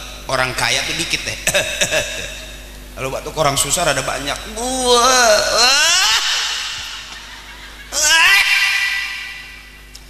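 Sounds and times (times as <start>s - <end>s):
man's groaning mock cough: 1.4s - 2.5s.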